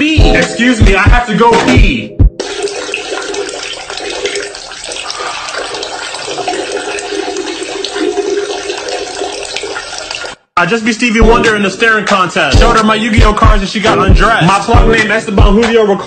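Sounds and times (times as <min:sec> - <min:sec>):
person peeing into toilet water: 0:02.4 - 0:10.5.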